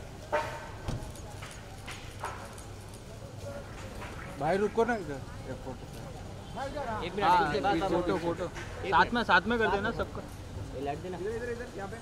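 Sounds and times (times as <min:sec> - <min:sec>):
crowd murmur: 0:00.0 - 0:08.8.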